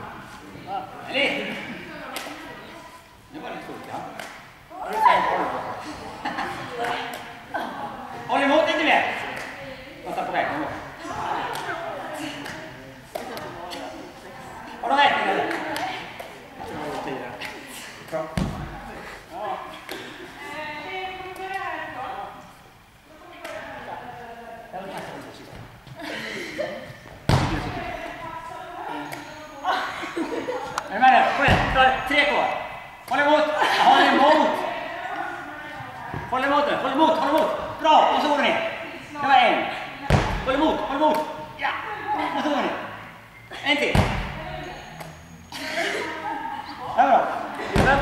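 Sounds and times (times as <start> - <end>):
people talking echoing: 0.0 - 48.0
medicine ball thud on floor: 18.4 - 18.8, 27.3 - 27.8, 40.1 - 40.5, 43.9 - 44.4.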